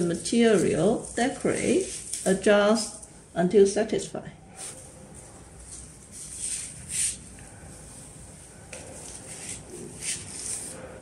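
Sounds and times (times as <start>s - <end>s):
flowers and leaves rustling: 0.2s - 3.0s.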